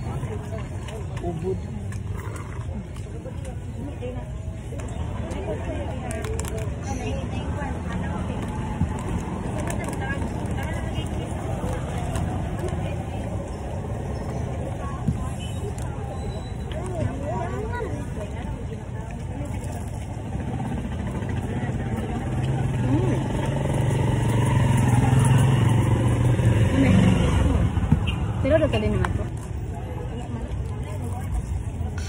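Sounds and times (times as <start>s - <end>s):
motor vehicle rumble passing: 4.9s - 32.0s.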